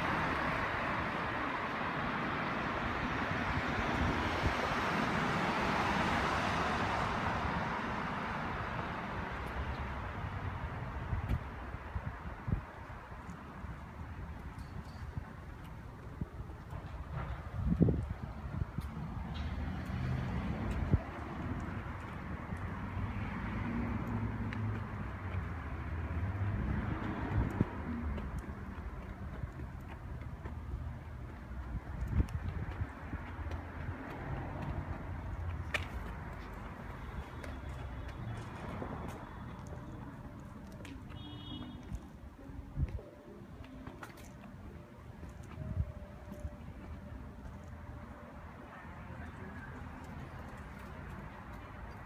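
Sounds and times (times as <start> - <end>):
distant traffic rumble: 0.0 - 52.0.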